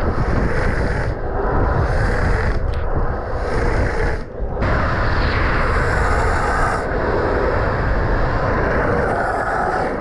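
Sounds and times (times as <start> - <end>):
longboard wheels rolling on asphalt: 0.0 - 10.0
wind on microphone: 0.0 - 10.0.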